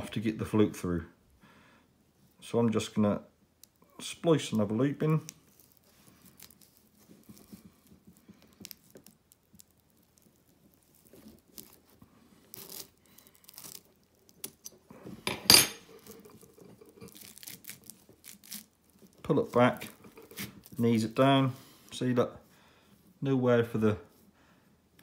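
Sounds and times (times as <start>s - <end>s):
rope braid rustling and scraping: 4.8s - 22.0s.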